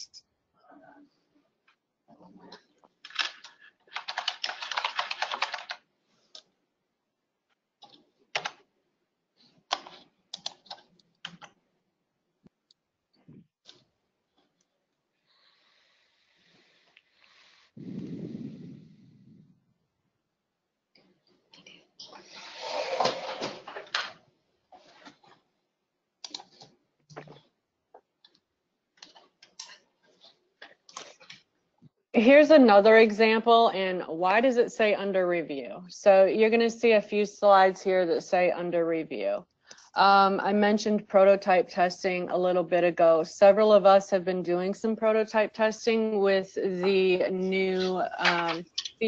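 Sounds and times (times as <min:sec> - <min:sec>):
faint keyboard typing: 0:01.6 - 0:06.5, 0:07.8 - 0:08.7, 0:09.4 - 0:11.6, 0:26.2 - 0:31.5
typing on computer keyboard: 0:03.0 - 0:05.8, 0:07.8 - 0:08.6, 0:09.7 - 0:11.6.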